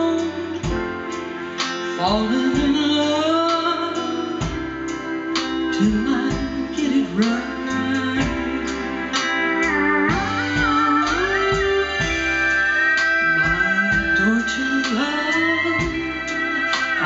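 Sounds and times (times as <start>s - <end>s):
country band playing: 0.0s - 17.0s
steel guitar sliding notes: 0.0s - 17.0s.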